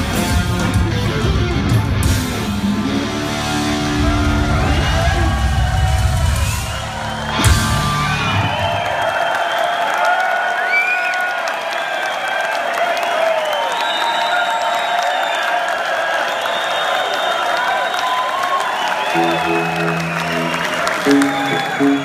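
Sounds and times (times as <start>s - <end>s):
rock band closing hit: 0.0s - 8.5s
audience cheering and whistling: 2.0s - 22.0s.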